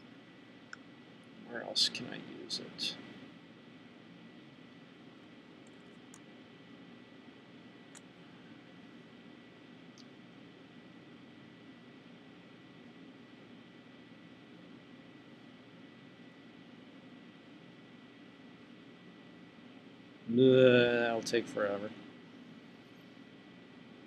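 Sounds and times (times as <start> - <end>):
room hiss: 0.0 - 24.0
faint small clicks: 5.6 - 6.3, 9.9 - 10.2.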